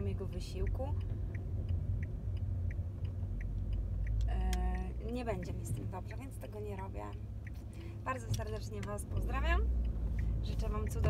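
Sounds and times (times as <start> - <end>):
car indicator relay ticking: 0.0 - 11.0
low rumble inside car cabin: 0.0 - 11.0.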